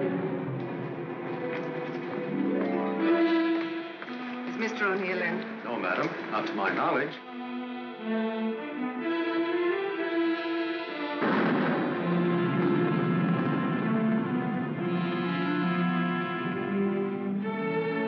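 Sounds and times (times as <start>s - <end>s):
orchestral music with strings: 0.0s - 18.0s.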